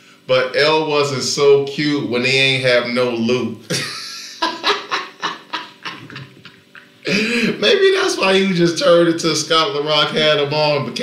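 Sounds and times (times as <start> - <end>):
man laughing hard: 3.7 - 7.6.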